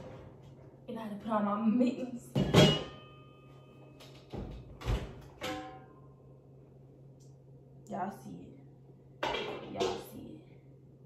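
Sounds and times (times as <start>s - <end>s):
metal cookware knocking: 2.4s - 3.2s, 5.4s - 6.0s, 9.2s - 10.2s.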